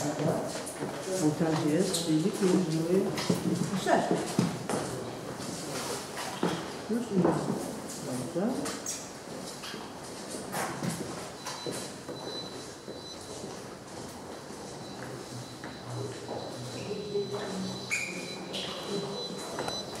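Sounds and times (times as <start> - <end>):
distant people talking: 14.8 - 20.0.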